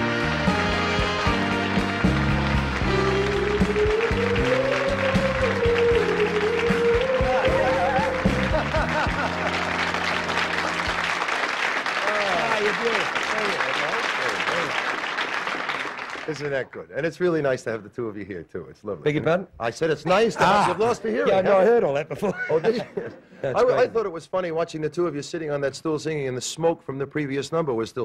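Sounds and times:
music with steady bass line: 0.0s - 10.4s
audience applauding: 0.0s - 16.7s
people laughing: 7.2s - 11.2s, 12.0s - 14.8s, 20.1s - 24.0s
people talking: 12.0s - 14.7s, 16.3s - 28.0s.

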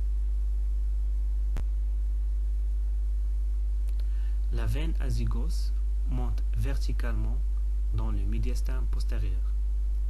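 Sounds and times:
mains hum: 0.0s - 10.0s.

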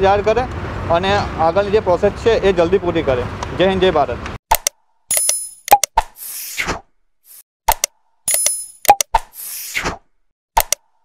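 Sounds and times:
sharp click: 4.5s - 6.4s, 7.3s - 10.0s, 10.6s - 10.9s
mouse clicks: 10.6s - 10.8s.

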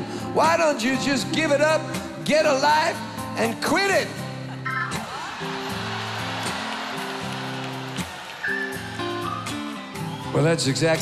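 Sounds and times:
live band playing soft chords: 0.0s - 11.0s.

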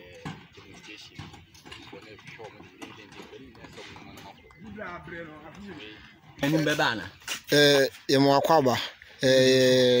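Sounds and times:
distant people talking: 0.0s - 7.1s.

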